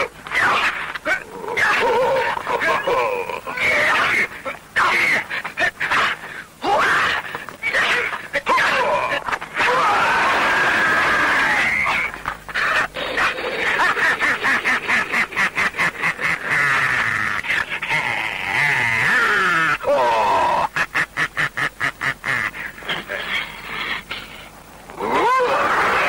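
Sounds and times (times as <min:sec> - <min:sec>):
high voice cackling and shrieking: 0:00.0 - 0:20.8, 0:24.9 - 0:26.0.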